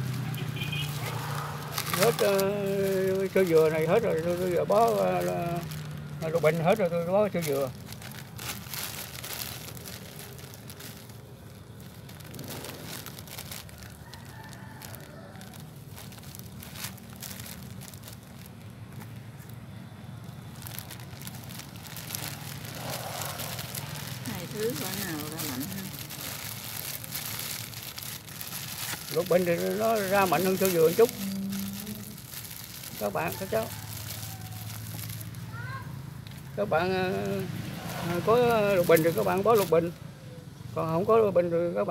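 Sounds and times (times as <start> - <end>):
plastic bag crinkling: 0.0 - 39.9
small irregular crackles: 0.0 - 40.0.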